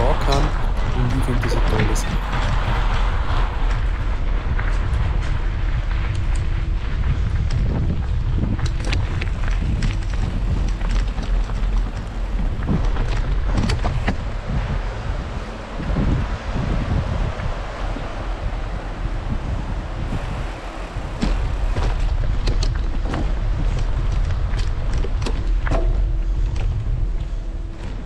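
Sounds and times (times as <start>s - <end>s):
bike tyres rolling: 0.0s - 28.0s
wind rumbling on microphone: 0.0s - 28.0s
bike knocks and rattles: 21.1s - 28.0s.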